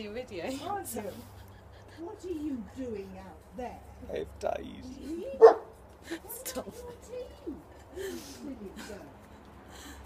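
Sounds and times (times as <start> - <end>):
people talking: 4.5 - 9.1
dog bark: 5.4 - 5.7
people laughing: 6.0 - 10.0.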